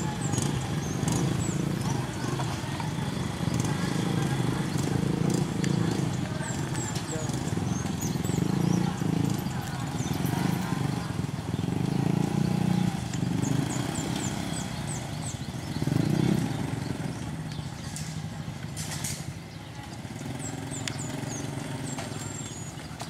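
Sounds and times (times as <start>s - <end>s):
crowd chatter: 0.0s - 23.0s
small motorcycle engines running: 0.0s - 23.0s.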